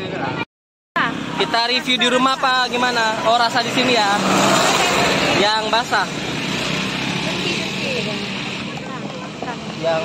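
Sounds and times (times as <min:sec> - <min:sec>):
rushing outdoor noise: 0:01.0 - 0:10.0
faint voices: 0:07.0 - 0:10.0.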